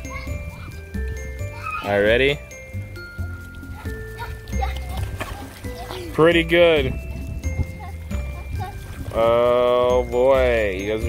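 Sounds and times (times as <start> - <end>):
faint children's voices: 0.0 - 2.4, 3.6 - 6.4, 7.4 - 9.6
background music with held notes: 0.0 - 11.0.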